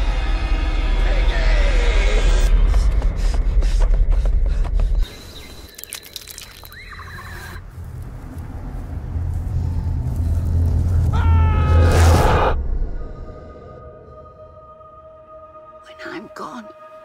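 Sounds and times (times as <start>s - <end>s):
low drone: 7.6s - 17.0s
loud low rumble: 7.8s - 15.8s.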